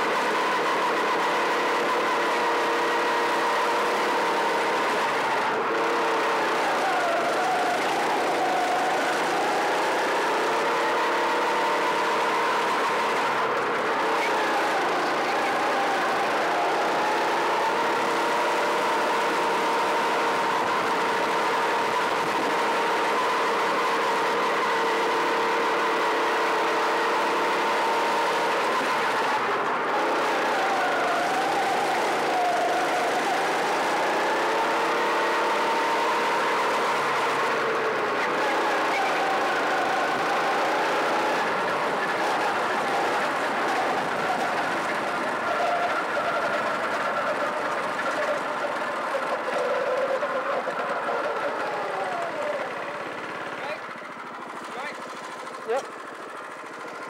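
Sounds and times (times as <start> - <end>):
kart engine running: 0.0 - 57.0.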